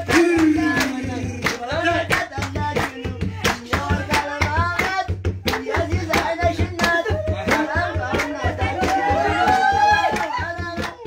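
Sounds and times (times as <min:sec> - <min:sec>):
people singing: 0:00.0 - 0:11.0
rhythmic hand clapping: 0:00.0 - 0:11.0.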